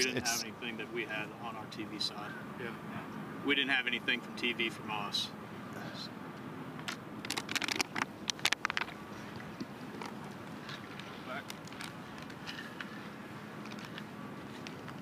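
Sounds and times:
voices murmuring: 0:00.0 - 0:06.2.

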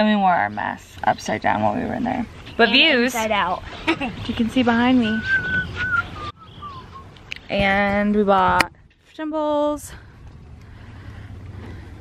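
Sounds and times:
person whistling: 0:05.2 - 0:07.2.

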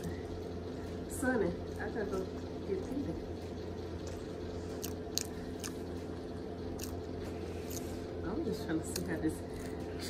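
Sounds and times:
steady low hum: 0:00.0 - 0:10.0
person chewing food: 0:03.8 - 0:08.2, 0:08.9 - 0:10.0.

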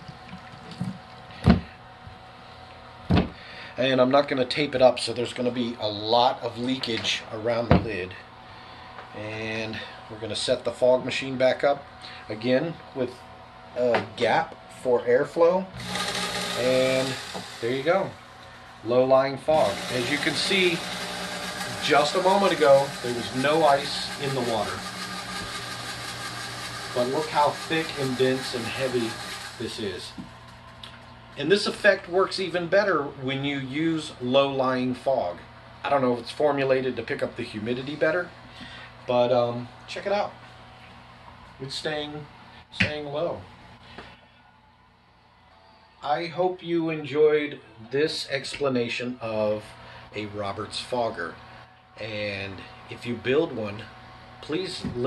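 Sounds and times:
low mechanical hum: 0:00.0 - 0:55.0
fog machine humming: 0:15.5 - 0:32.7.

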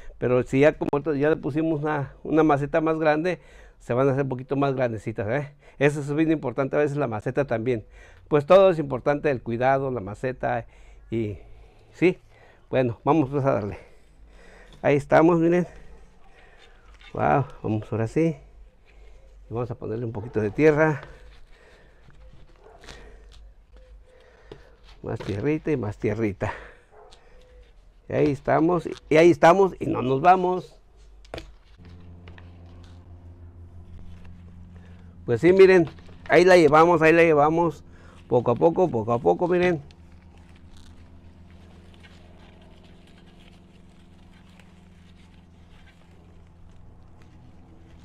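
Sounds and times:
steady low hum: 0:09.2 - 0:48.0
hands rustling in soil: 0:11.2 - 0:48.0.

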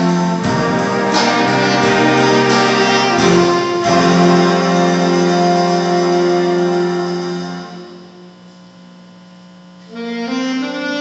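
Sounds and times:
jazz band playing: 0:00.0 - 0:08.3, 0:09.8 - 0:11.0
electrical mains hum: 0:06.2 - 0:11.0.

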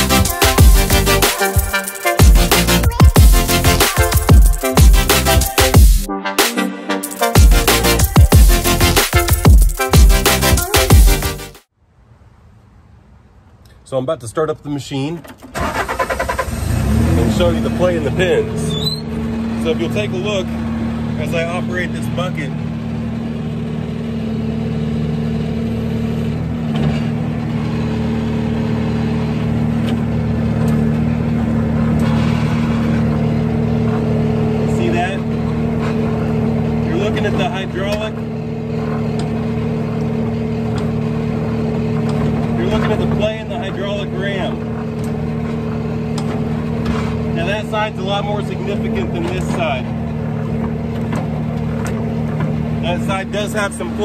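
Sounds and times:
hydraulics working: 0:00.0 - 0:06.1, 0:14.9 - 0:54.0
loader engine running: 0:00.0 - 0:06.2, 0:07.1 - 0:11.7, 0:15.2 - 0:54.0.

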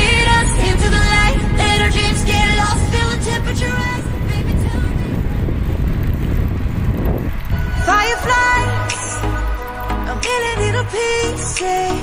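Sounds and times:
wind and road noise rumble: 0:00.0 - 0:12.0
song: 0:07.6 - 0:12.0.

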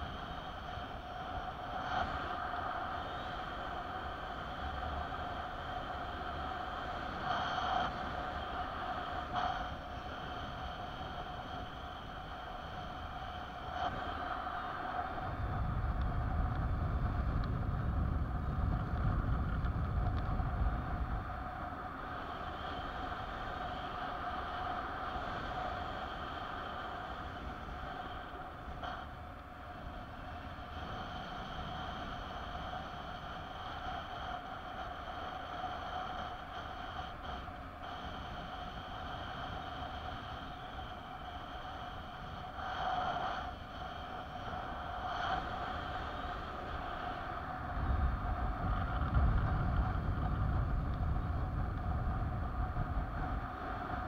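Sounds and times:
steady whistle: 0:00.0 - 0:04.7
low wind buffeting: 0:00.0 - 0:54.0
wind rushing over microphone: 0:00.0 - 0:54.0.

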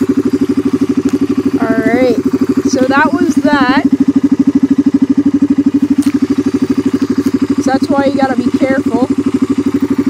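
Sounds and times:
atv engine idling: 0:00.0 - 0:10.0.

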